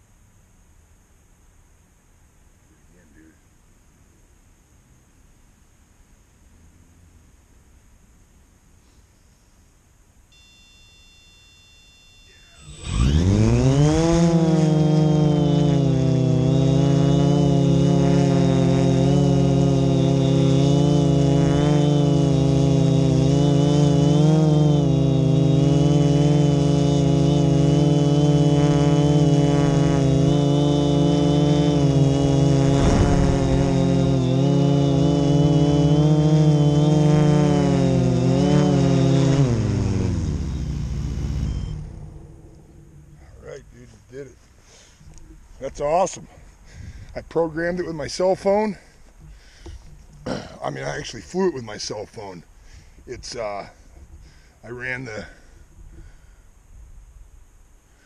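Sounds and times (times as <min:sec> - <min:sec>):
drone motors whining and humming: 0:10.4 - 0:45.8.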